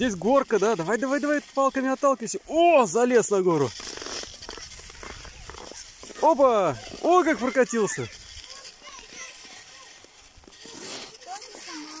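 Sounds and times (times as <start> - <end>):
light outdoor hiss: 0.0 - 12.0
small child voice sounds: 4.8 - 12.0.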